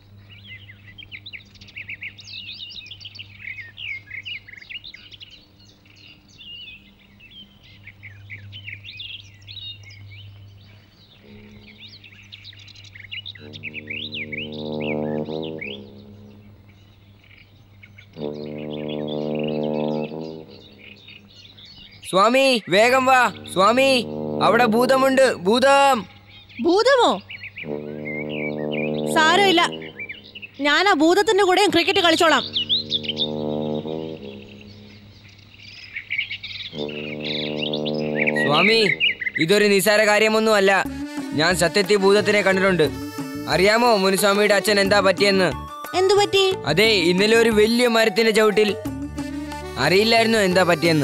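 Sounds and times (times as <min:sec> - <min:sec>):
small birds chirping: 0:00.0 - 0:51.0
long held background music notes: 0:05.6 - 0:17.2, 0:18.1 - 0:21.4, 0:22.7 - 0:26.1, 0:27.6 - 0:35.4, 0:36.7 - 0:51.0.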